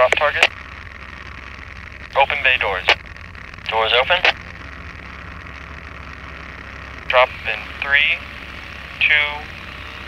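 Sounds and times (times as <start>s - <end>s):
model aircraft engine droning: 0.5s - 10.0s.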